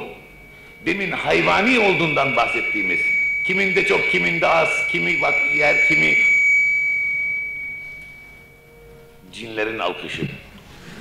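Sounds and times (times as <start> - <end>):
high-pitched feedback whistle: 0.0 - 10.1.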